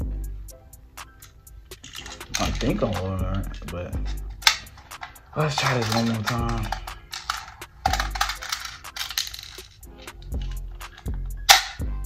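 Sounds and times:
background music: 0:00.0 - 0:12.0
bb gun clicks and rattles: 0:01.7 - 0:03.1, 0:04.1 - 0:11.9.

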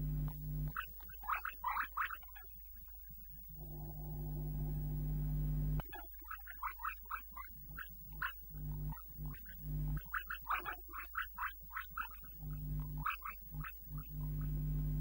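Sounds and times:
steady low hum: 0:00.0 - 0:00.8, 0:03.4 - 0:05.8, 0:07.5 - 0:10.1, 0:12.2 - 0:15.0.

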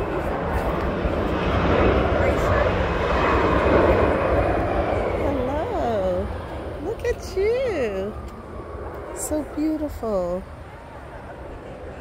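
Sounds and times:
aircraft engine rumble: 0:00.0 - 0:12.0.

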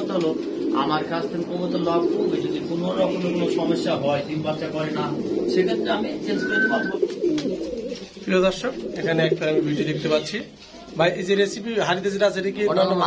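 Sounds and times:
pigeons cooing: 0:00.0 - 0:11.6.

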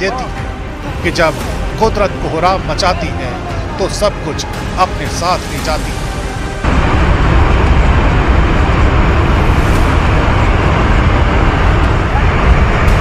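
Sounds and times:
river torrent rushing: 0:00.0 - 0:13.0.

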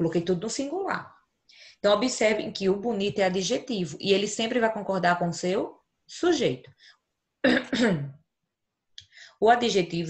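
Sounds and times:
woman clearing her throat: 0:07.4 - 0:08.2.

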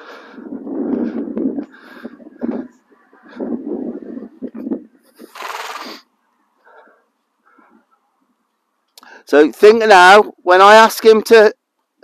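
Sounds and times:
horse neighing: 0:05.2 - 0:06.0
loud rushing hiss: 0:05.2 - 0:06.1.

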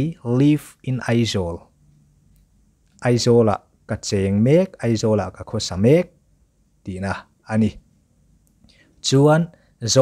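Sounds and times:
person speaking: 0:00.0 - 0:01.8, 0:02.8 - 0:06.2, 0:06.8 - 0:07.9, 0:08.6 - 0:10.0.

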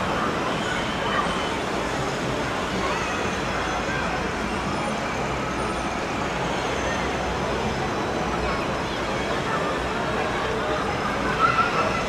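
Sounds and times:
faint people's voices: 0:00.0 - 0:12.0.

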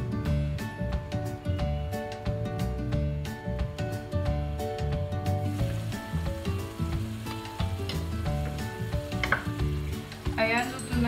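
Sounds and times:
background music: 0:00.0 - 0:11.0
sauce sizzling in a wok: 0:01.9 - 0:11.0.

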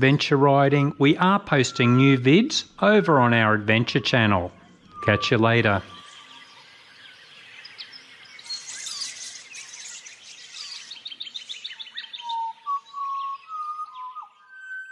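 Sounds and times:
bird trilling: 0:00.0 - 0:14.9
bird whistling: 0:00.0 - 0:14.9
birds chirping: 0:00.0 - 0:14.9.

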